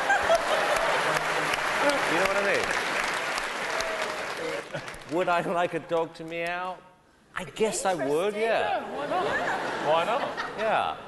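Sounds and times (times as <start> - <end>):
people laughing: 0.0 - 1.5, 8.8 - 11.0
hands clapping: 0.4 - 6.7.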